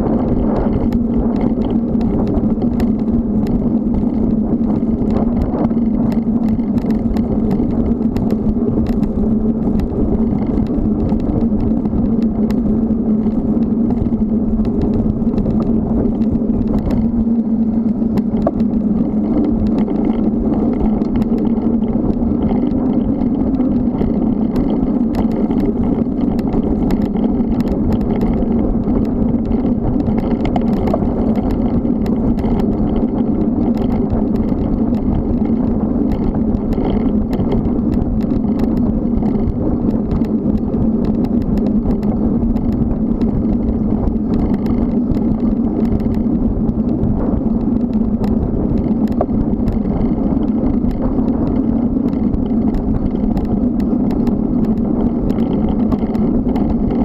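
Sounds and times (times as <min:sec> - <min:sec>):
constant low hum: 0:00.0 - 0:57.0
small ticks and rattles: 0:00.0 - 0:57.0
wind and bicycle tyre noise: 0:00.0 - 0:57.0.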